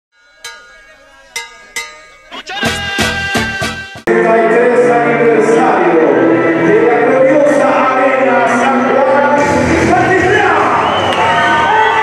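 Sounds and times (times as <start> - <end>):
metallic strikes ringing like a bell: 0.2 - 3.4.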